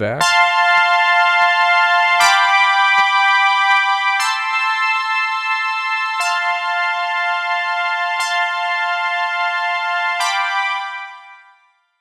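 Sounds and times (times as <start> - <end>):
synthesizer chords: 0.0 - 11.6.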